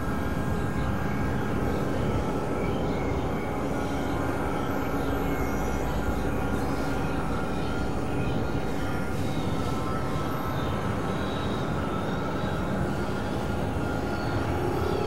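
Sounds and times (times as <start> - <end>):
rumbling drone and noise music: 0.0 - 15.0.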